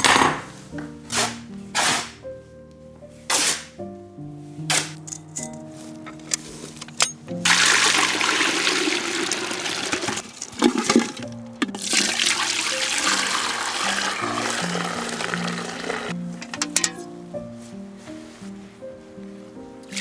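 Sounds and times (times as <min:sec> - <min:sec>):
liquid pouring and splashing: 0:07.4 - 0:16.1
metal pots knocking: 0:16.4 - 0:17.0.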